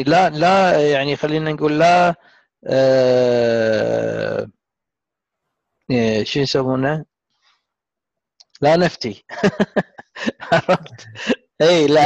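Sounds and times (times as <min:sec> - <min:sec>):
man's drawn-out hesitation sound: 0:08.7 - 0:12.0.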